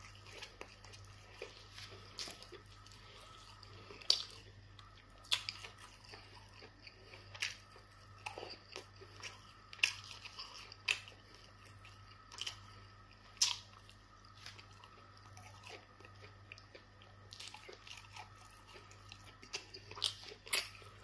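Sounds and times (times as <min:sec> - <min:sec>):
faint low hum: 0:00.0 - 0:21.0
person chewing with wet smacks: 0:00.0 - 0:21.0.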